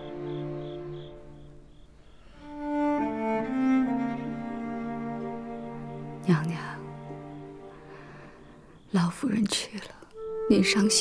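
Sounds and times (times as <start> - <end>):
sustained string music chord: 0.0 - 8.2.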